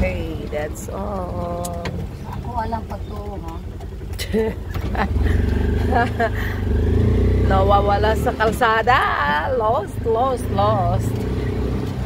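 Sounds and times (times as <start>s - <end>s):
small motorcycle engine running: 0.4s - 12.0s.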